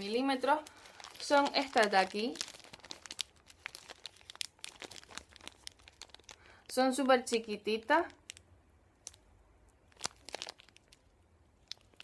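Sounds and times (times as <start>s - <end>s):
plastic bag crinkling: 0.0s - 8.4s, 9.8s - 12.0s.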